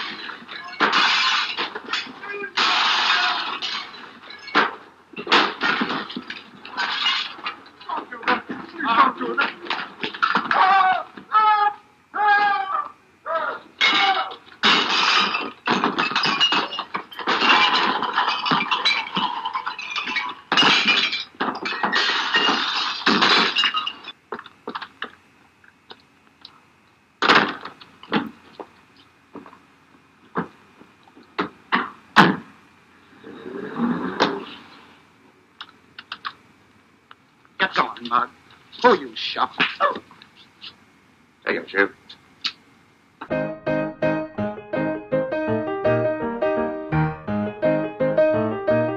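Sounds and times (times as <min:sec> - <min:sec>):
knocks and thuds: 0:00.0 - 0:10.6, 0:31.4 - 0:32.5
crashing and breaking: 0:00.0 - 0:10.8, 0:13.8 - 0:25.2, 0:27.2 - 0:28.7
people shouting: 0:02.3 - 0:03.5, 0:10.5 - 0:14.4.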